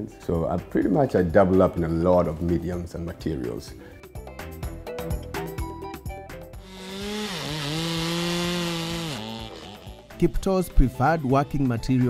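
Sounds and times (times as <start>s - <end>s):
chainsaw cutting wood: 6.6s - 10.2s.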